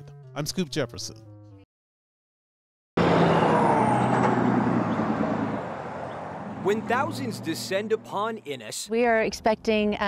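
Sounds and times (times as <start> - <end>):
vehicle passing by: 3.0 - 8.7.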